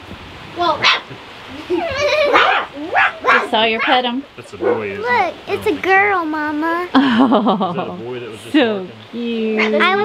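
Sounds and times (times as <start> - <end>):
people's voices: 0.6 - 10.0
puppy whining and yelping: 1.7 - 4.0.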